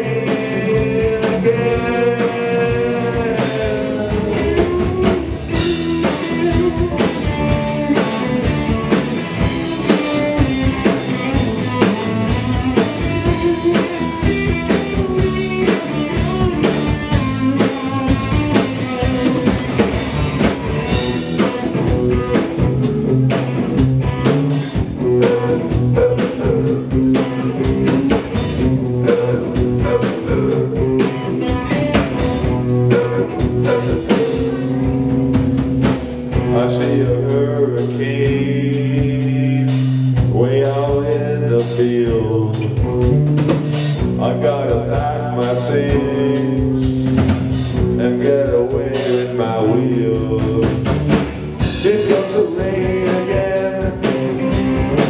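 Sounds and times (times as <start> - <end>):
person singing: 0.0 - 8.6, 11.6 - 16.9, 25.1 - 27.5, 29.0 - 31.7, 32.9 - 34.8, 36.4 - 42.8, 44.2 - 47.0, 47.9 - 50.9, 51.6 - 54.6
blues-rock band playing: 0.0 - 55.0.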